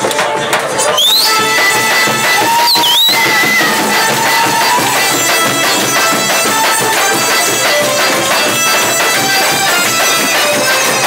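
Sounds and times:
acoustic band accompaniment: 0.0s - 11.0s
violin: 0.0s - 11.0s.

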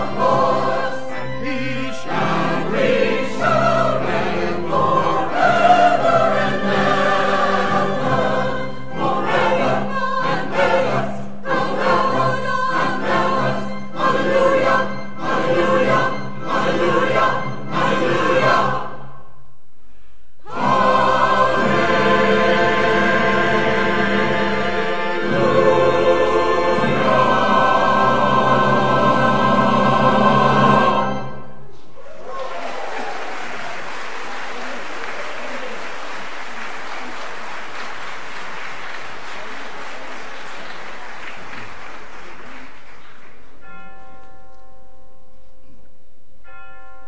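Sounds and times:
church choir singing: 0.0s - 19.4s, 20.4s - 31.8s.

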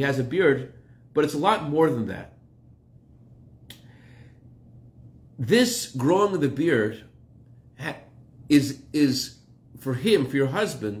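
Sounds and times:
faint low hum: 0.0s - 11.0s
man's mouth click: 3.6s - 3.9s
soft intake of breath: 3.8s - 4.6s.

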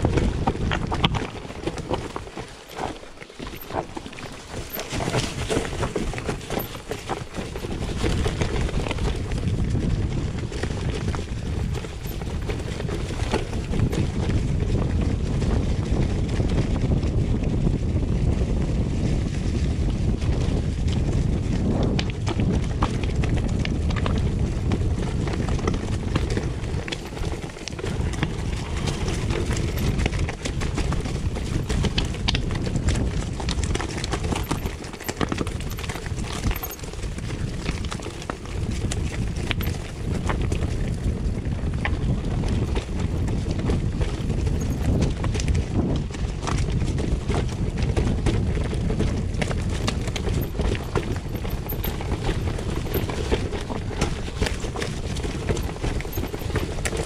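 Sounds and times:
bike rattling: 0.0s - 57.0s.

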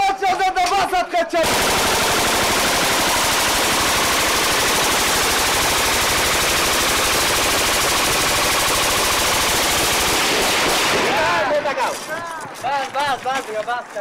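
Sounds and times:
machine gun burst: 1.4s - 12.1s.

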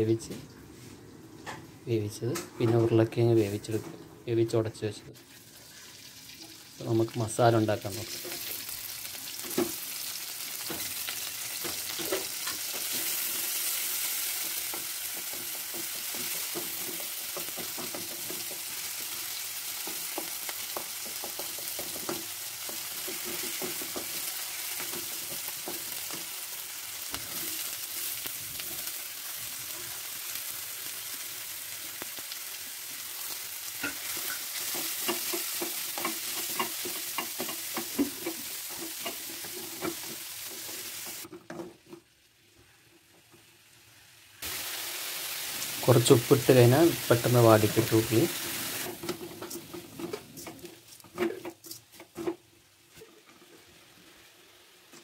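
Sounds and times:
oil sizzling in a pan: 5.2s - 41.3s, 42.1s - 52.0s, 52.6s - 55.0s
wooden spatula scraping a pan: 47.7s - 53.7s.

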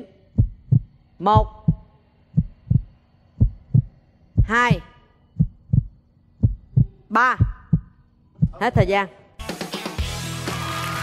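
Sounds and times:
heartbeat thumps: 0.3s - 9.0s.

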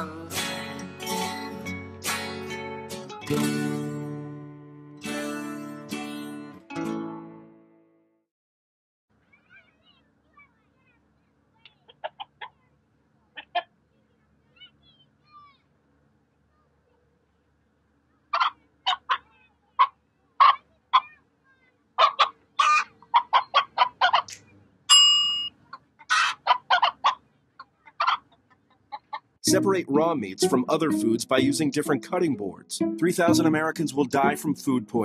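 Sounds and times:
hen clucking: 11.8s - 12.6s, 13.4s - 13.7s, 18.3s - 21.2s, 22.0s - 24.4s, 25.7s - 29.3s.

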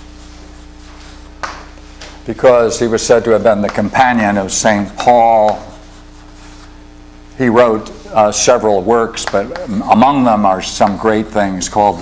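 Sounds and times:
chalk scratching on blackboard: 0.0s - 1.4s, 4.1s - 6.8s
steady low hum: 0.0s - 12.0s
chalk tapping on board: 4.8s - 6.6s.

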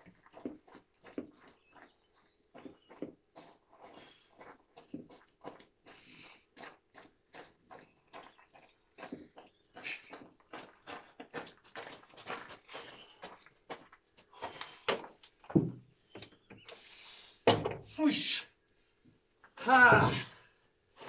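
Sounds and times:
footsteps crunching on gravel: 0.0s - 15.5s.

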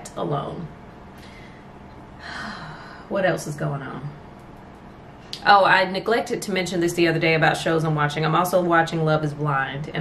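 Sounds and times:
woman breathing in: 1.1s - 3.1s.

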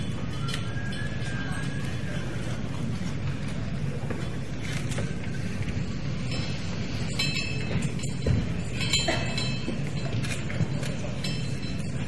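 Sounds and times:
audience murmuring: 0.0s - 6.0s.

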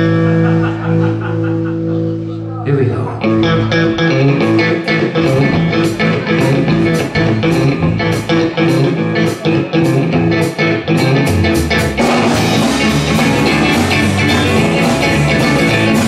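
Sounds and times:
live blues band playing: 0.0s - 16.0s
steady drum beat: 4.4s - 16.0s.

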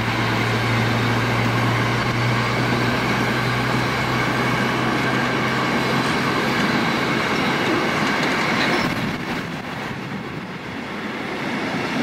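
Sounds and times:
high wheel squeal: 0.0s - 9.3s
train wheels rumbling and clicking: 0.0s - 12.0s.

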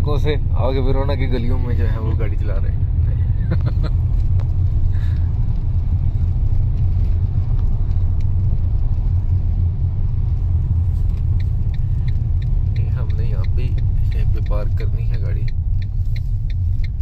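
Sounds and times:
car engine and tyres rumbling: 0.0s - 17.0s.

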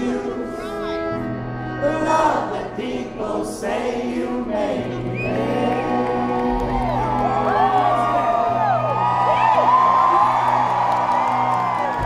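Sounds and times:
person singing: 0.0s - 8.6s
audience whooping and cheering: 5.1s - 12.0s.

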